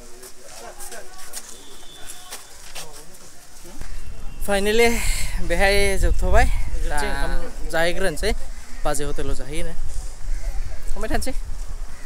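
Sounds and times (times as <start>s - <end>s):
people talking indistinctly: 0.0s - 11.5s.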